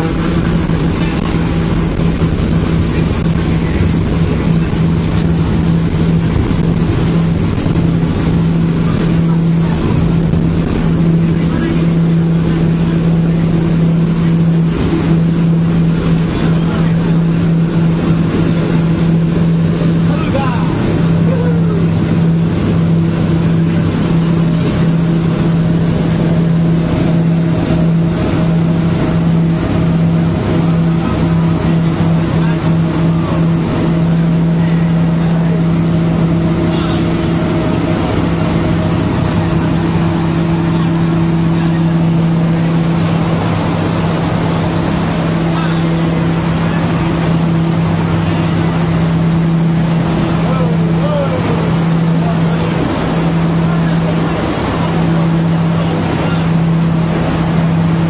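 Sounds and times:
engine droning steadily: 0:00.0 - 0:58.0.

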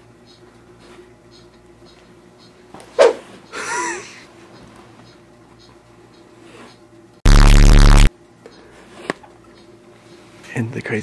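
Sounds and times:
loud distorted comedy blast: 0:07.3 - 0:08.1.

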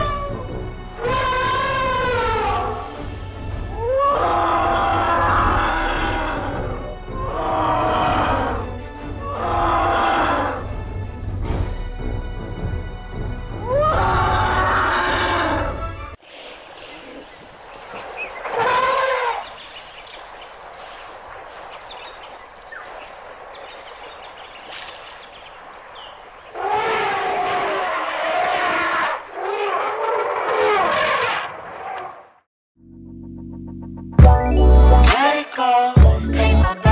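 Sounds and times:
elephants trumpeting: 0:00.0 - 0:03.0, 0:03.7 - 0:10.7, 0:13.6 - 0:16.0, 0:17.9 - 0:19.6, 0:26.0 - 0:32.2.

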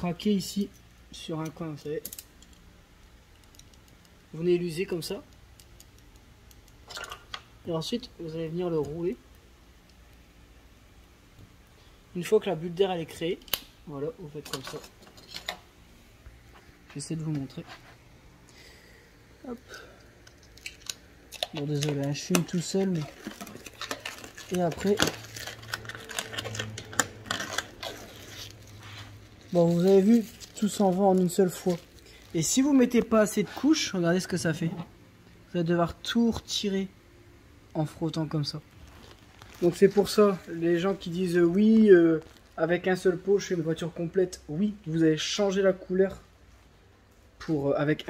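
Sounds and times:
rubber film peeling with crackling clicks: 0:20.2 - 0:32.4, 0:38.7 - 0:40.0.

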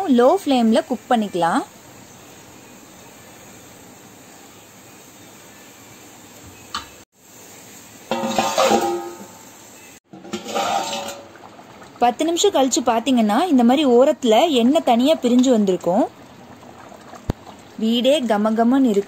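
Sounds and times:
faint steady hiss: 0:00.0 - 0:10.0
metal plate clattering on pot: 0:08.1 - 0:09.4, 0:10.1 - 0:11.3.

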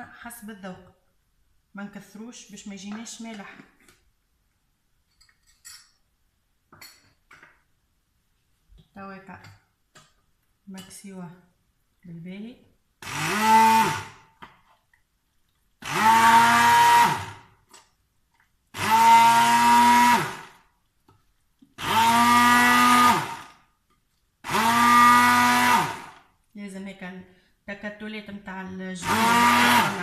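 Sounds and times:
stick blender motor pulsing: 0:13.0 - 0:14.1, 0:15.8 - 0:17.4, 0:18.8 - 0:20.5, 0:21.8 - 0:23.5, 0:24.5 - 0:26.2, 0:29.0 - 0:30.0.

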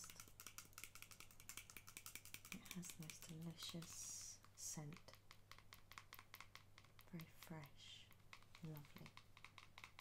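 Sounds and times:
fingernails tapping plastic bottle: 0:00.0 - 0:10.0.

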